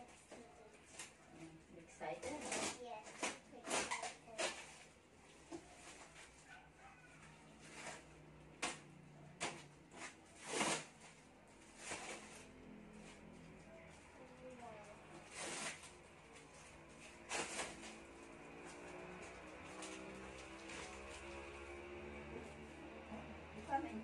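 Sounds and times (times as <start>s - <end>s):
rustling packing material in box: 2.2s - 5.0s, 7.3s - 8.8s, 9.5s - 22.9s.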